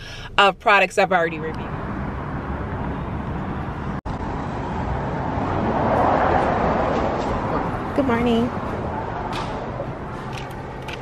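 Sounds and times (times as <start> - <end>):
outdoor traffic noise: 0.0 - 11.0.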